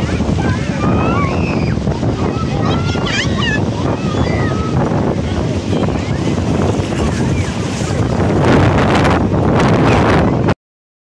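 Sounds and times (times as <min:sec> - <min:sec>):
shallow sea surf: 0:00.0 - 0:10.6
wind noise on microphone: 0:00.0 - 0:10.6.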